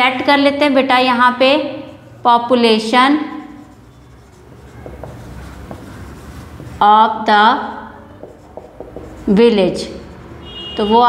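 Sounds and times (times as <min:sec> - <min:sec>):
marker scratching on whiteboard: 0:00.0 - 0:11.0.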